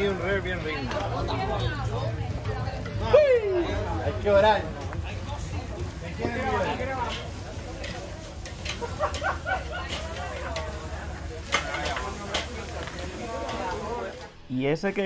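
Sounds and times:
background voices chattering: 0:00.0 - 0:14.4
steaks sizzling on grill: 0:00.0 - 0:14.4.

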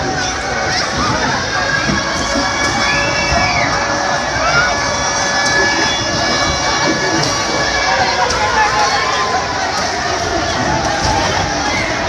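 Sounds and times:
crowd shouting and calling: 0:00.0 - 0:12.0.

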